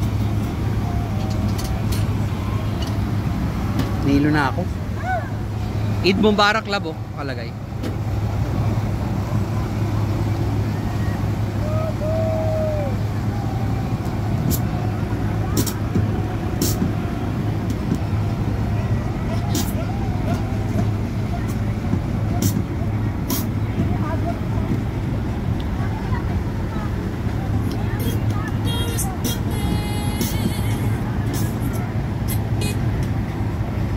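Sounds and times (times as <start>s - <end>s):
boat engine drone: 0.0s - 33.9s
water rushing along hull: 0.0s - 33.9s.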